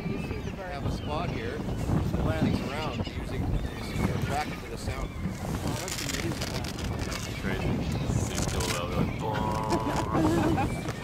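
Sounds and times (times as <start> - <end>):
boat noise: 0.0 - 11.0
gulls calling: 0.0 - 11.0
wind on microphone: 0.0 - 11.0.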